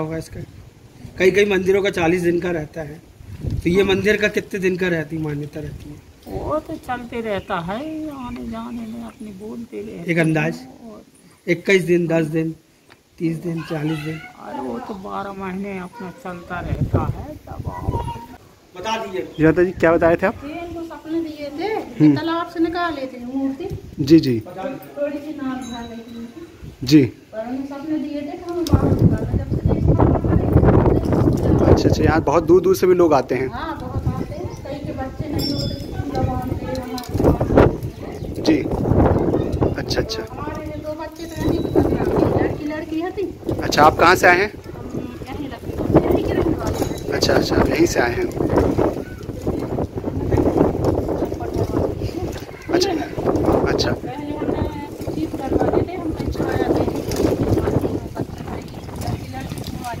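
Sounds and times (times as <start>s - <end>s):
wind rumble on microphone: 0.0s - 4.4s, 16.5s - 18.4s, 28.4s - 60.0s
elderly woman talking: 6.2s - 11.3s, 13.7s - 18.3s, 33.5s - 38.4s, 40.0s - 43.5s, 44.8s - 47.6s, 54.0s - 60.0s.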